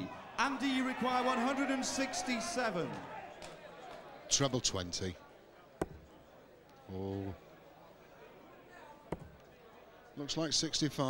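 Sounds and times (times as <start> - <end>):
low background noise: 0.0 - 11.0
dart striking dartboard: 5.8 - 6.1, 9.1 - 9.4.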